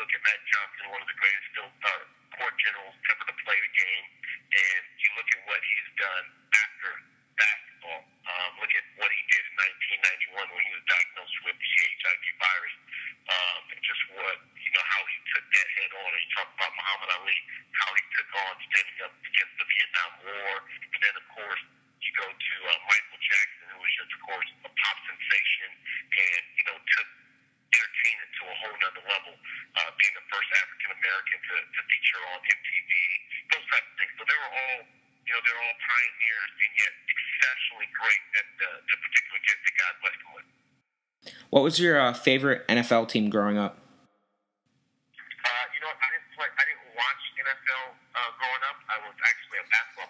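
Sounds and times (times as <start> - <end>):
speech over telephone line: 0.0 - 27.1, 27.8 - 40.4, 41.4 - 43.7, 45.2 - 50.0
faint steady hum: 0.0 - 44.1, 44.7 - 50.0.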